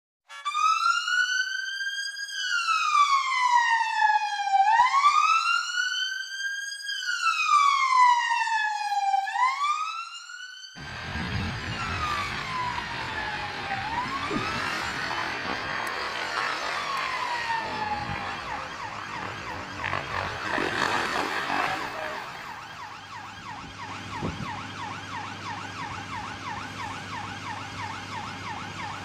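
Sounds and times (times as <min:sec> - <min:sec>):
fire engine siren wailing: 0:00.3 - 0:29.0
noisy background: 0:10.8 - 0:24.6.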